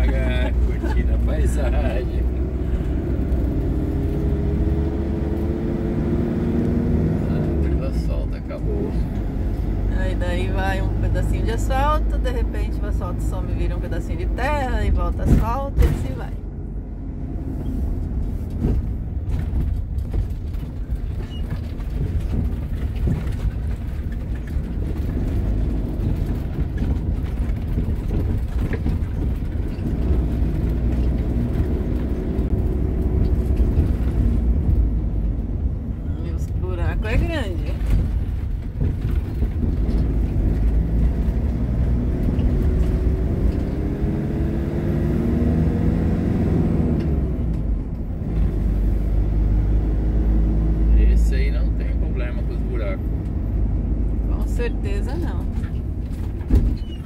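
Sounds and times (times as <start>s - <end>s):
engine and tyres rumbling: 0.0s - 57.0s.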